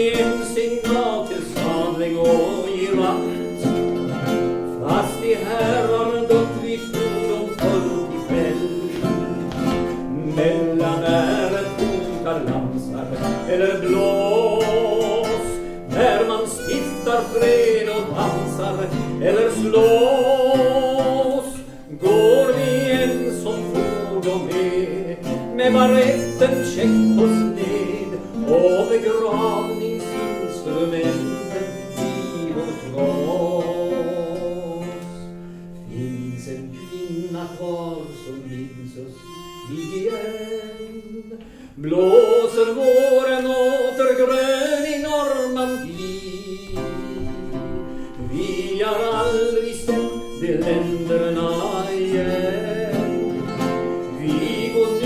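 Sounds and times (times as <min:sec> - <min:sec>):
acoustic guitar accompaniment: 0:00.0 - 0:55.0.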